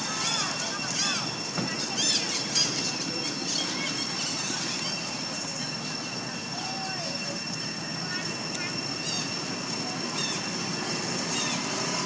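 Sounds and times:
high-pitched whine: 0.0 - 12.0
monkey high-pitched squeaks: 0.1 - 5.1.

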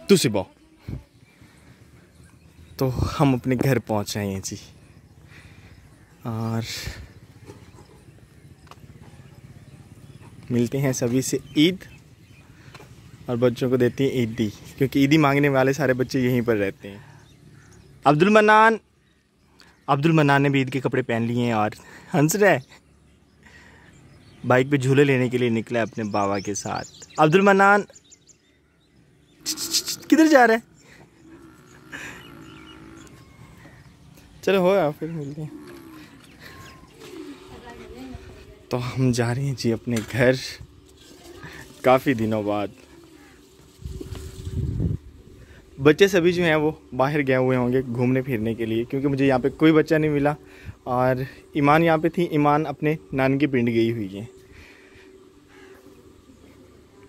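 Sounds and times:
distant voices: 0.0 - 57.0
quick footsteps on dirt road: 7.1 - 13.3, 30.7 - 38.7
bird cooing: 30.8 - 33.9, 35.1 - 38.6, 54.3 - 57.0.

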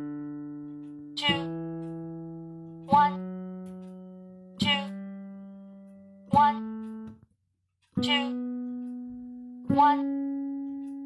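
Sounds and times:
piano single notes: 0.0 - 7.2, 8.0 - 11.0.

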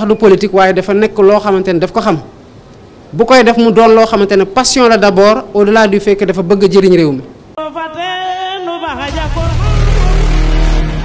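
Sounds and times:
music: 7.6 - 11.0
bass-heavy logo sting: 9.1 - 11.0.

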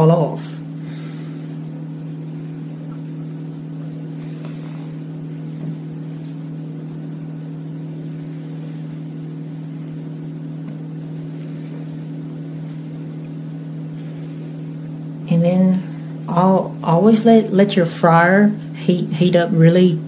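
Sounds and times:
motor humming: 0.0 - 20.0.

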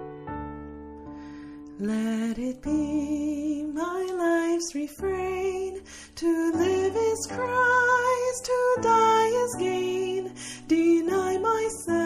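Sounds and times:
person singing a hymn: 1.8 - 12.0.

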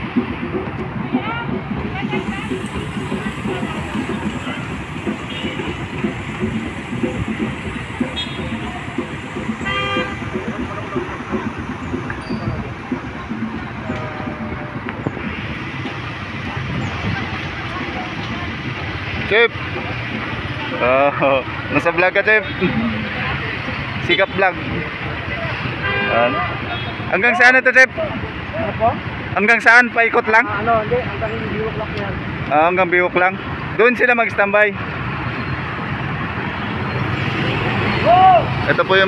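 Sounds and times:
vehicles driving past: 0.0 - 39.0
vehicle horn toot: 8.2 - 8.6, 9.6 - 10.4, 25.8 - 27.2.

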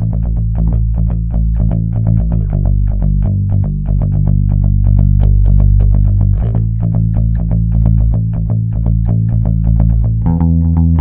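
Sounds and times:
electric bass guitar line: 0.0 - 11.0.

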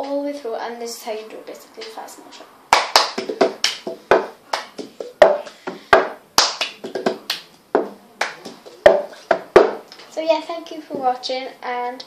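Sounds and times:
hand claps: 2.7 - 9.8.

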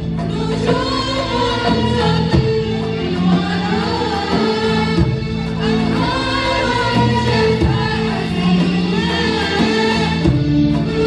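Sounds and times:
women's ensemble singing: 0.0 - 11.0.

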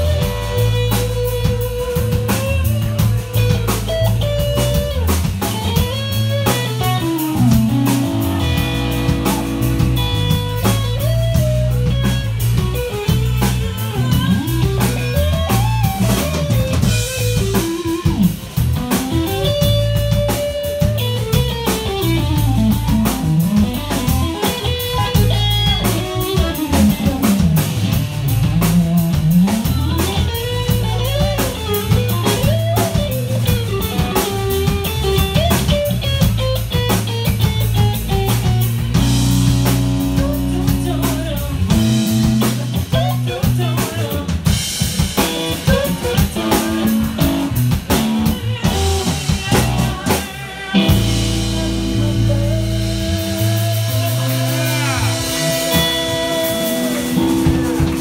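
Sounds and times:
bass guitar: 0.0 - 58.0
drum kit: 0.0 - 58.0
lead electric guitar bending notes: 0.0 - 58.0.

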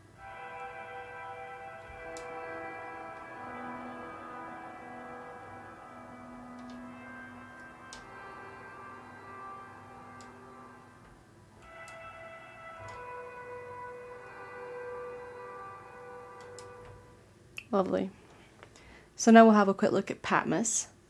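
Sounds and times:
ambient electric guitar pad: 0.0 - 17.4.

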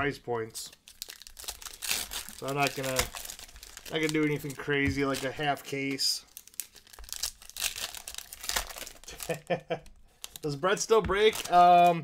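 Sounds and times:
card pack wrapper crinkling and tearing: 0.5 - 12.0.

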